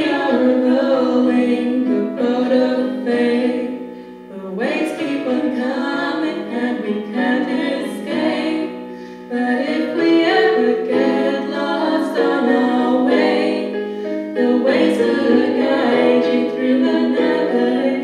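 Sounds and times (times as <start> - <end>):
women singing in harmony: 0.0 - 18.0.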